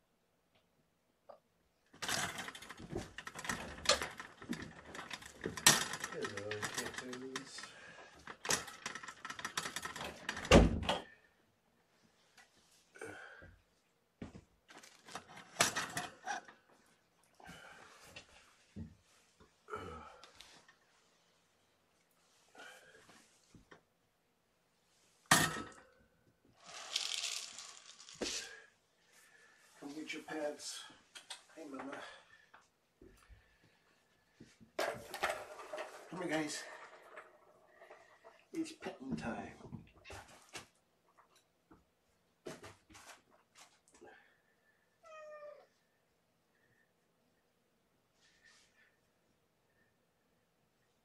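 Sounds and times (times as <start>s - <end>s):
ball clattering in plastic toy: 2.0s - 10.5s, 26.6s - 28.3s, 34.8s - 38.5s
rustling: 26.6s - 30.0s.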